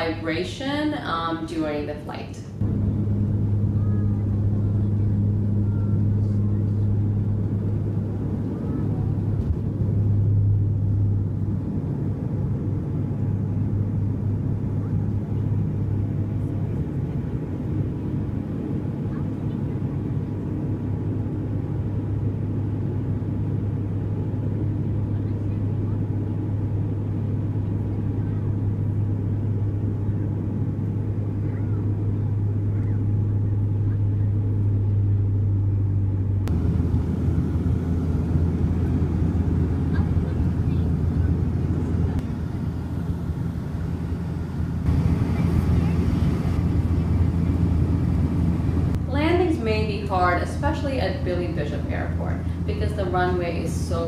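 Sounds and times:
low drone of propeller engines: 0:00.0 - 0:54.0.

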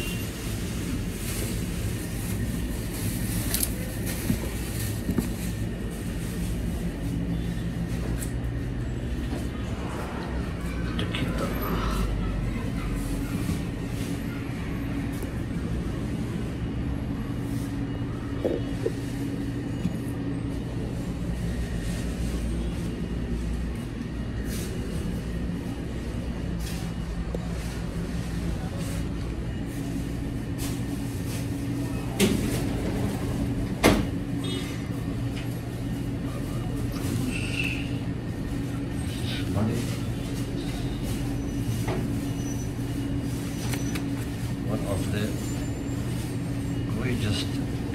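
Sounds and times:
low machine hum: 0:00.0 - 0:47.9.

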